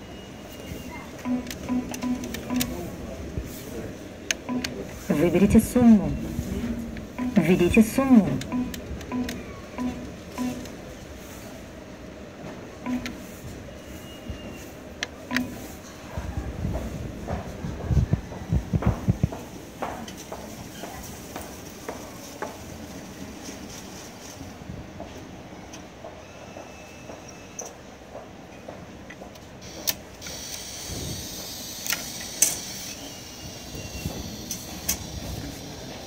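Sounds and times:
atm key press beeps: 0:00.1 - 0:02.9, 0:04.4 - 0:04.8, 0:07.2 - 0:10.7, 0:12.8 - 0:13.2, 0:15.2 - 0:15.7.

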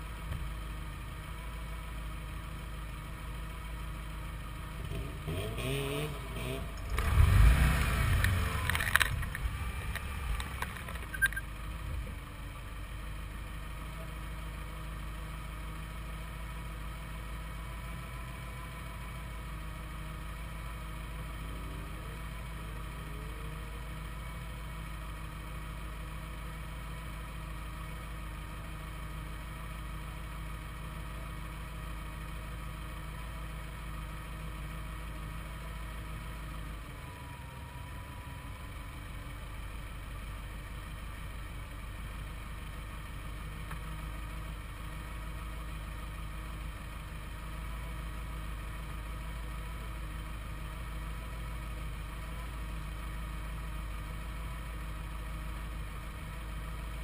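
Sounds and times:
car engine revving hard: 0:04.9 - 0:08.8.

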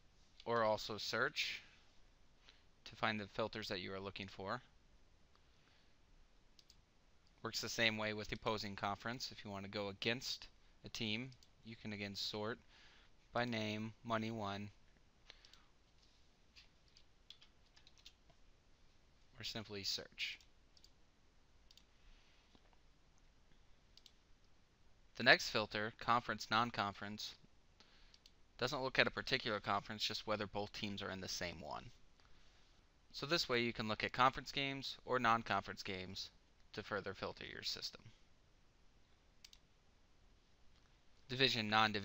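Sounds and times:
faint computer mouse clicks: 0:06.6 - 0:06.8, 0:21.7 - 0:21.9, 0:24.0 - 0:24.2, 0:39.4 - 0:39.7
faint computer mouse click: 0:21.7 - 0:21.9, 0:39.4 - 0:39.7.

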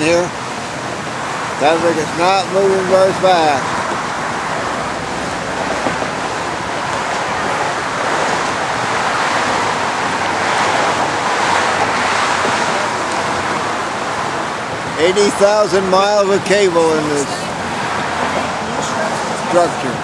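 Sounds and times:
road traffic: 0:00.0 - 0:20.0
wind rushing: 0:03.6 - 0:15.0.

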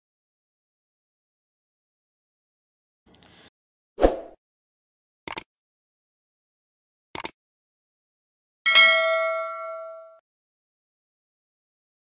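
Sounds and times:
bell chime ding: 0:08.7 - 0:10.2.

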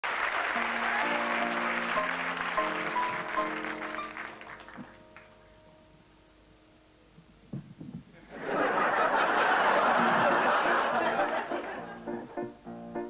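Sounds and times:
audience applause: 0:00.0 - 0:05.4, 0:08.4 - 0:12.2
piano sustained chords: 0:00.4 - 0:07.1.

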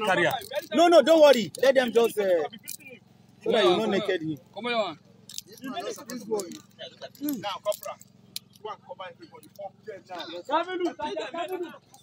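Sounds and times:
metal objects clinking: 0:00.0 - 0:03.0, 0:05.2 - 0:12.0.

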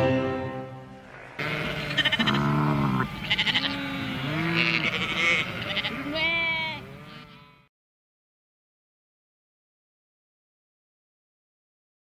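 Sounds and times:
cartoon sheep bleating: 0:01.4 - 0:07.7.

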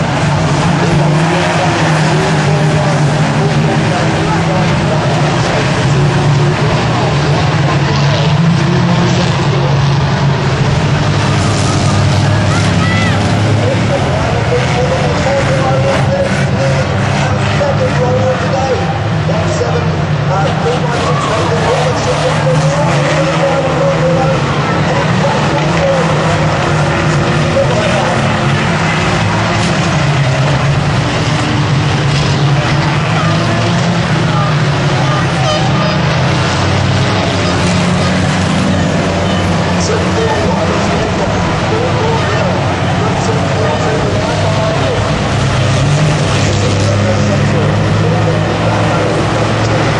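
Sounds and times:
indistinct voices: 0:00.0 - 0:49.9
racing engines droning: 0:00.0 - 0:49.9.

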